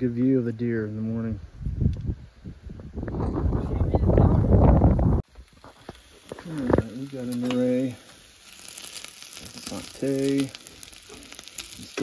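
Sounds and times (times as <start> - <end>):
vegetables sizzling in a frying pan: 5.2 - 12.0.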